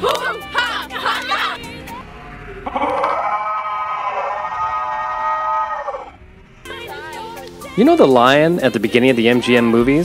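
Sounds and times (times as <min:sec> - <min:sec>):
girl yelling: 0:00.0 - 0:01.6.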